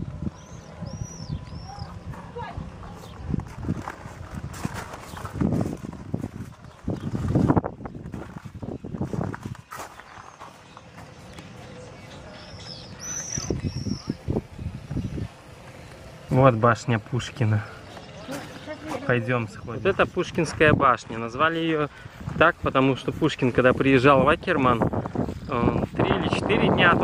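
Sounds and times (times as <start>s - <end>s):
bird chirping: 0.0s - 3.3s, 6.6s - 15.6s.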